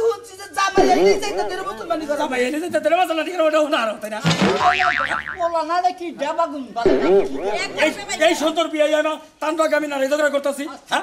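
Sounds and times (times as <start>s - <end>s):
cartoon boing spring effects: 0.8s - 2.4s, 4.4s - 5.6s, 6.9s - 8.5s
voices: 0.8s - 2.6s, 6.9s - 8.6s.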